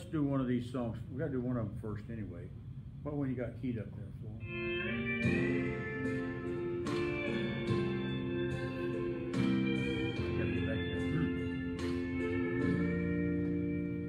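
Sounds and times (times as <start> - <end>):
gospel instrumental sustained chords: 4.3 - 14.0.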